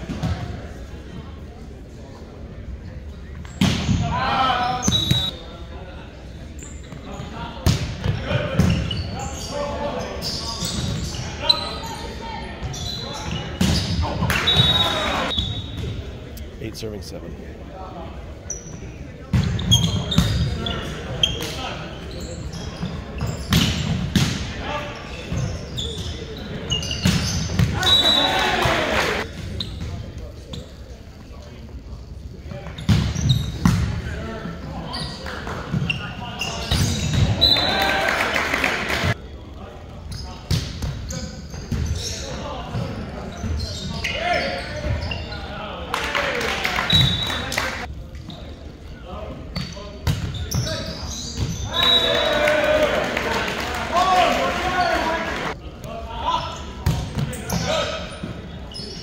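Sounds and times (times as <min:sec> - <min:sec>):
sneaker squeaks on hardwood: 0:04.6 - 0:05.4, 0:08.0 - 0:16.0, 0:18.5 - 0:24.2, 0:24.8 - 0:28.3, 0:29.4 - 0:30.8, 0:32.6 - 0:33.8, 0:34.8 - 0:37.8, 0:40.1 - 0:45.5, 0:46.9 - 0:47.5, 0:49.6 - 0:52.1, 0:56.4 - 0:59.0
players calling out: 0:24.6 - 0:29.3
spectators cheering: 0:27.7 - 0:29.2, 0:37.3 - 0:39.2, 0:51.8 - 0:55.6.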